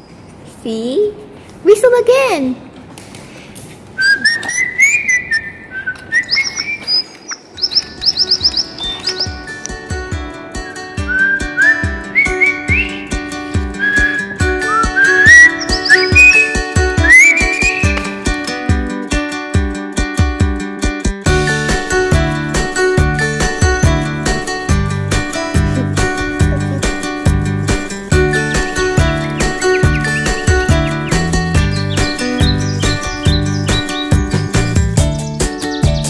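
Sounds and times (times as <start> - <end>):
bird-like whistled chirps: 4.0 - 9.5, 11.1 - 18.2, 29.3 - 34.4
background music with steady beat: 8.4 - 36.0.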